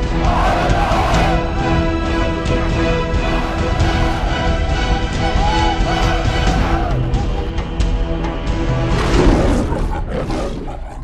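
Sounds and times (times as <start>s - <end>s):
lion roaring: 9.0s - 11.0s.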